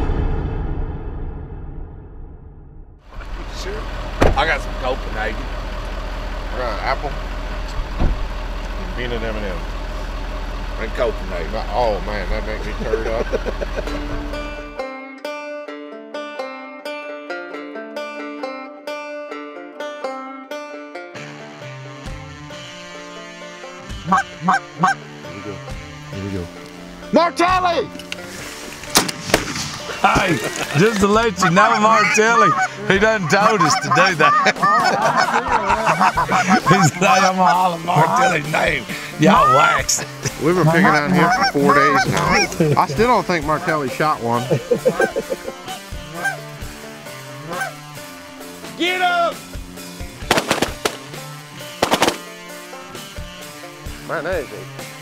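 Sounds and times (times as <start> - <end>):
background music: 11.0 - 55.0
goose honking: 21.2 - 27.0, 29.8 - 46.6, 47.3 - 48.0
shotgun shots: 28.9 - 30.0, 50.2 - 52.4.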